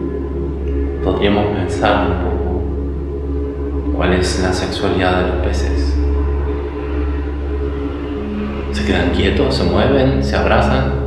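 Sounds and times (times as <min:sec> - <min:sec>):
ambient background music: 0:00.0 - 0:11.0.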